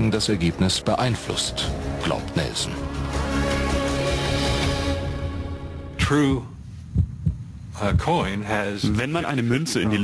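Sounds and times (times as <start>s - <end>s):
man speaking: 0.0s - 2.9s, 5.9s - 6.6s, 7.8s - 10.0s
low thumps: 5.7s - 8.2s.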